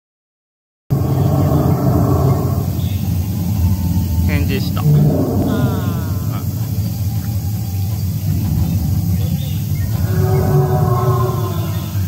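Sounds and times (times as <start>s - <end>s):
deep dinosaur growl over loudspeakers: 0.9s - 12.0s.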